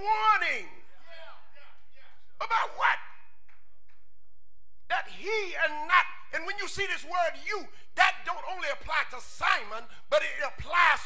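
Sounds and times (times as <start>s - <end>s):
man preaching over microphone: 0.0s - 3.3s, 4.9s - 11.0s.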